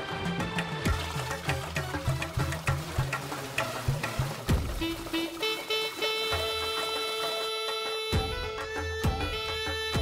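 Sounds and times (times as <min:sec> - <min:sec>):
music with drum beat: 0:00.0 - 0:10.0.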